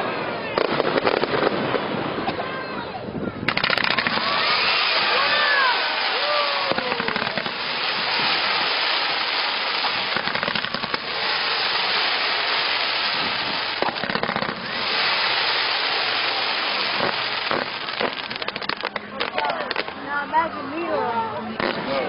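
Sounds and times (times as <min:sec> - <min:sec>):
fireworks crackling: 0:00.0 - 0:20.1, 0:21.5 - 0:22.0
fireworks bangs: 0:00.4 - 0:02.8, 0:03.4 - 0:20.0, 0:21.6 - 0:22.0.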